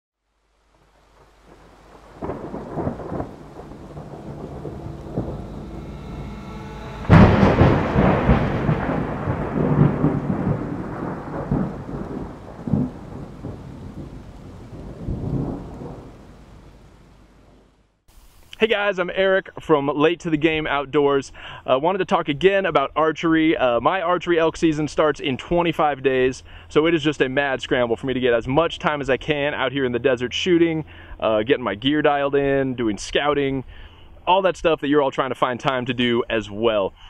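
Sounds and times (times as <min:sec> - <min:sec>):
rain: 0:00.2 - 0:19.0, 0:21.3 - 0:34.2
thunder rumbling: 0:00.8 - 0:18.0
loud thunderclap: 0:01.5 - 0:17.7.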